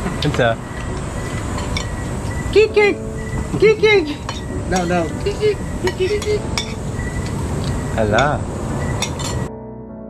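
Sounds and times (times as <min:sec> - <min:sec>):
cutlery clinking against plates: 0:00.2 - 0:02.0, 0:04.2 - 0:08.3, 0:09.0 - 0:09.5.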